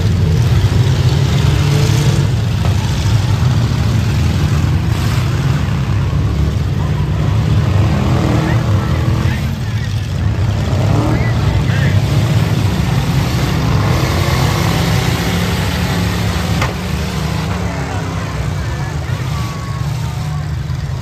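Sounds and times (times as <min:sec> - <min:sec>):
car engines rumbling: 0:00.0 - 0:21.0.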